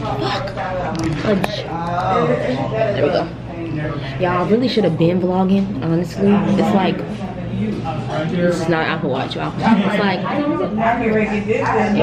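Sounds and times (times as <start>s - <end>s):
woman talking: 4.2s - 7.1s.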